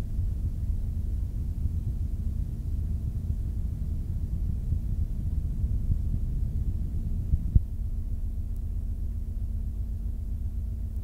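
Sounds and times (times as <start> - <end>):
muffled low rumble: 0.0 - 11.0
steady low hum: 0.0 - 11.0.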